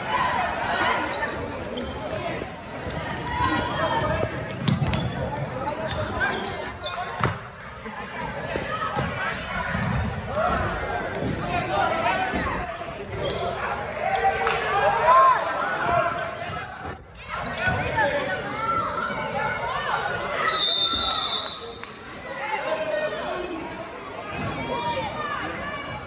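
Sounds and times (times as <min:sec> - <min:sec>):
people shouting and talking: 0:00.0 - 0:26.0
referee's whistle: 0:20.4 - 0:21.8.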